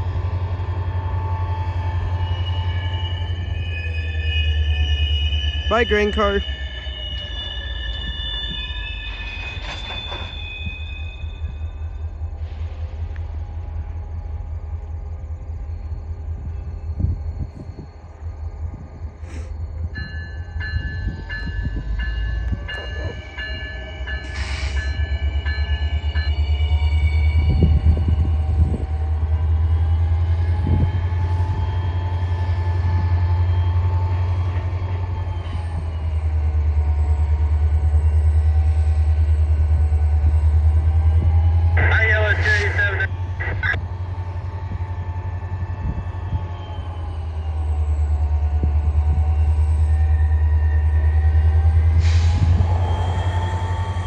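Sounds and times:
train wheel squeal: 0.0s - 43.3s, 44.2s - 54.0s
freight cars rumbling: 33.0s - 54.0s.

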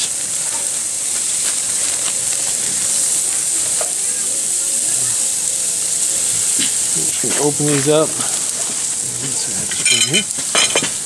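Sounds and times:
steaks sizzling on grill: 0.0s - 11.0s.

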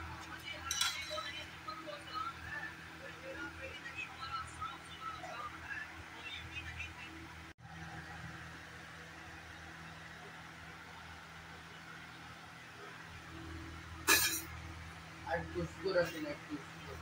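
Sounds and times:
faint background hum and hiss: 0.0s - 17.0s.

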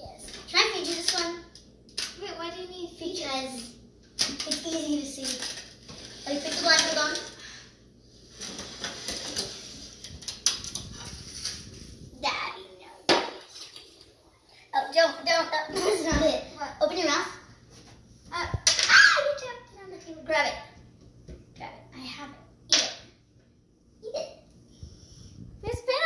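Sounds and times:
paper napkins rustling: 8.2s - 12.2s
children's voices and laughter: 14.6s - 17.3s.

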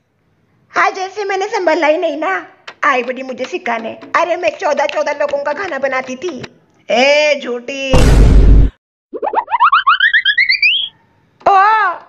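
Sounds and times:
springy boing notes climbing in pitch: 9.1s - 10.9s.

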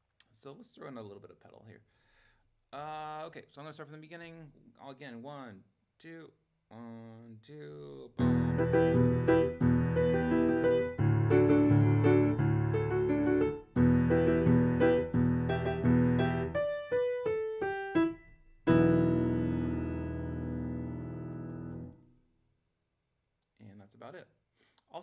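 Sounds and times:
digital piano playing: 8.2s - 22.0s.

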